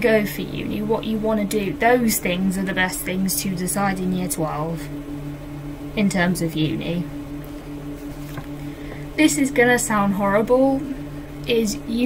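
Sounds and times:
steady low two-pitch hum: 0.0s - 12.0s.

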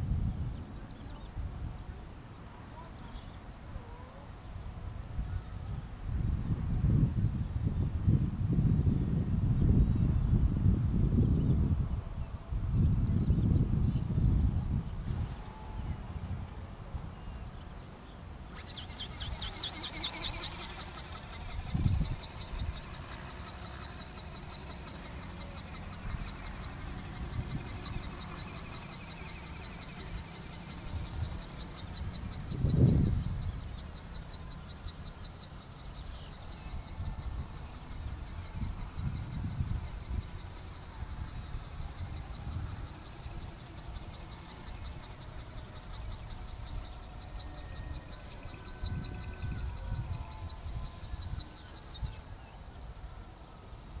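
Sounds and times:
wind rumbling on microphone: 0.0s - 54.0s
insect buzzing: 18.4s - 53.1s.

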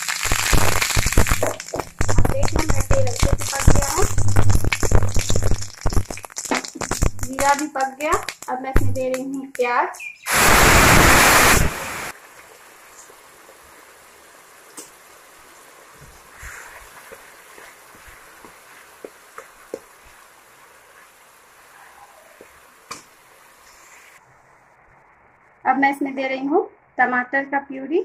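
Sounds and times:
onion paste sizzling in oil: 0.0s - 24.2s.

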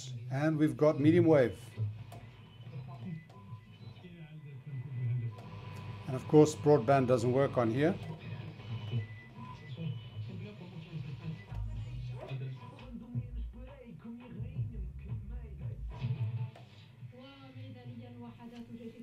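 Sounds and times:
radio broadcast music with voice: 0.0s - 19.0s.

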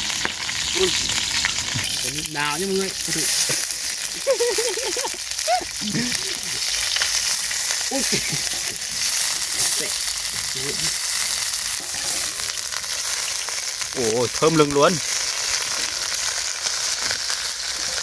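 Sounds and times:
aromatics sizzling in hot oil: 0.0s - 18.0s.

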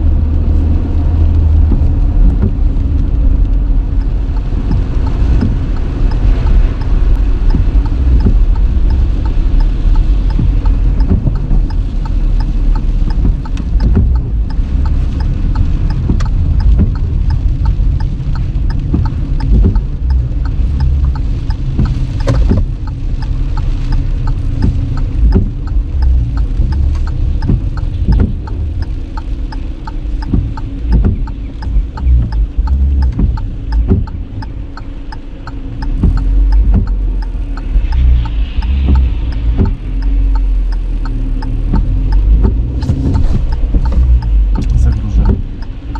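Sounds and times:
car cabin low rumble: 0.0s - 45.9s
scattered sharp taps: 10.3s - 12.2s, 23.6s - 29.4s, 35.8s - 37.0s.

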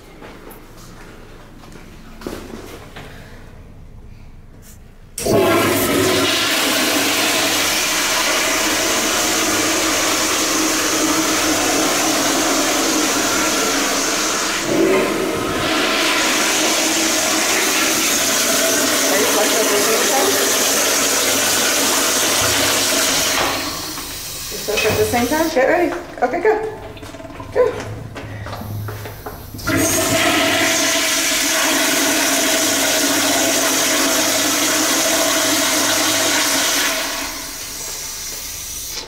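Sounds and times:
toilet flushing: 5.2s - 39.0s.

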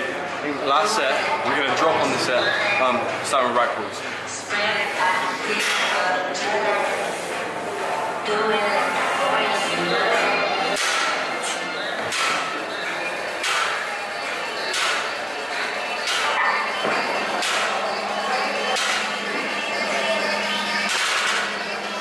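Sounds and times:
indistinct voices: 0.0s - 22.0s.

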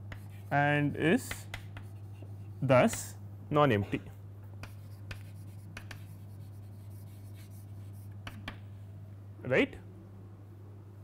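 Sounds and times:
chalk tapping and scratching: 0.0s - 3.1s, 4.6s - 8.6s.

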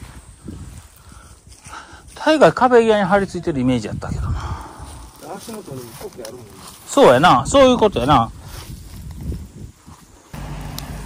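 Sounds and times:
footsteps through undergrowth: 0.0s - 3.8s, 4.6s - 11.0s
rustling undergrowth: 0.0s - 11.0s.

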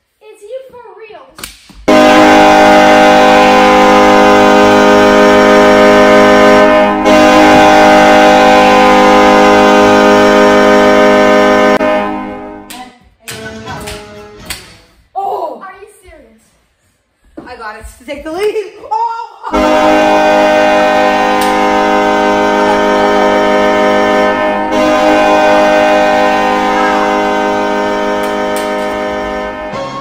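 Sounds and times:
hockey goal horn blast: 1.9s - 12.7s, 19.5s - 30.0s.

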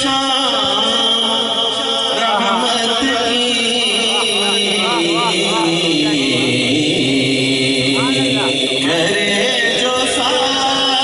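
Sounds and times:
man singing through pa system: 0.0s - 11.0s.

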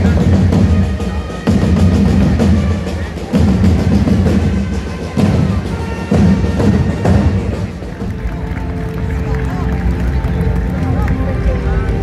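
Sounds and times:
crowd chatter: 0.0s - 12.0s
music with long held notes: 0.0s - 12.0s.

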